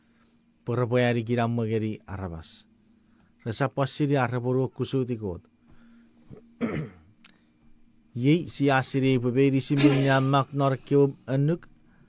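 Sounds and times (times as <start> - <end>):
man clearing throat: 6.3 - 7.1
man speaking: 8.2 - 11.6.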